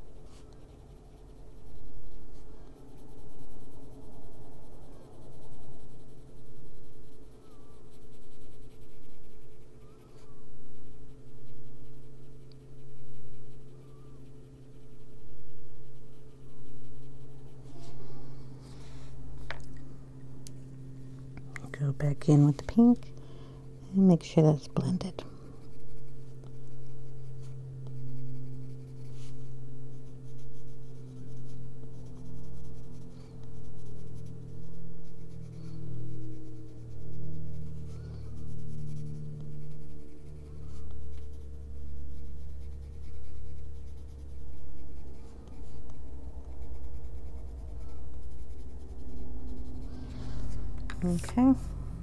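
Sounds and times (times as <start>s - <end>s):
steady low hum: 0.0s - 52.0s
pencil stroking on paper: 24.2s - 51.7s.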